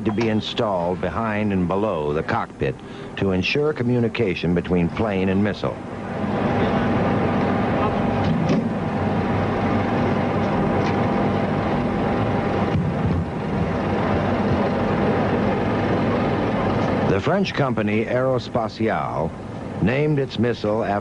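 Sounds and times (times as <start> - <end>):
loud machine noise: 0.0 - 21.0
thin steady whine: 0.0 - 21.0.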